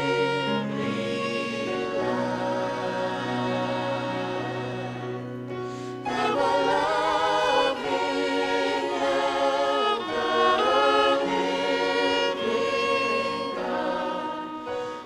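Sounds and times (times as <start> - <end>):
choir singing in harmony: 0.0 - 15.0.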